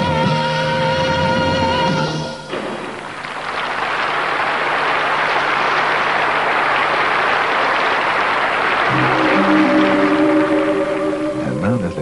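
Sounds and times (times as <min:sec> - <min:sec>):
audience applauding: 0:02.5 - 0:11.7.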